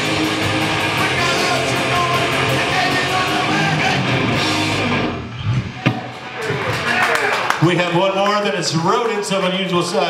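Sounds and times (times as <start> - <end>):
punk rock band final chord: 0.0 - 5.1
crowd shouting and cheering: 0.0 - 10.0.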